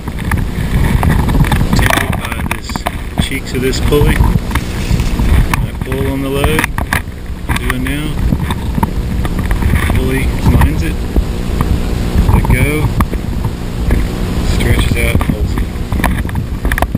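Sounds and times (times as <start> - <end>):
handling noise: 0.0 - 16.9
rope rumbling through pulleys: 0.0 - 16.9.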